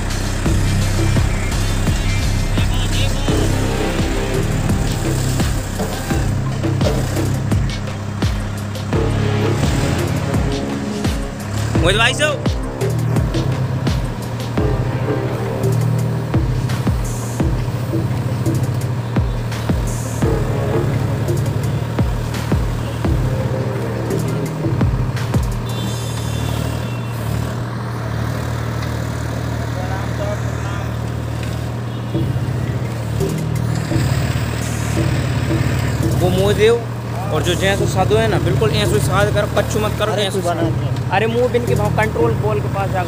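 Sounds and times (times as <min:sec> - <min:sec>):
music with low drum beats: 0:00.0 - 0:26.4, 0:32.2 - 0:43.0
tractor diesel engine running: 0:00.0 - 0:43.0.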